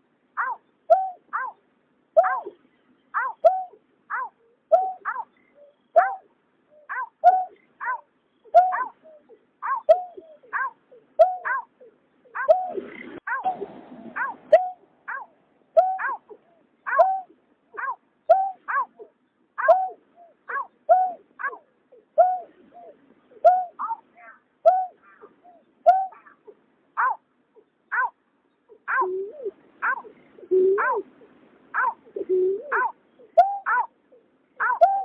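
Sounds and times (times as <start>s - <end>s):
low hooting bird notes: 2.2s - 28.0s, 28.7s - 35.0s
bird downward-sliding calls: 34.6s - 35.0s.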